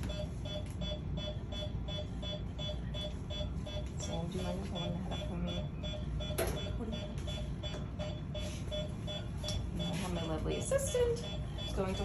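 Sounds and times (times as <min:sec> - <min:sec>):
patient monitor beeping: 0:00.0 - 0:12.0.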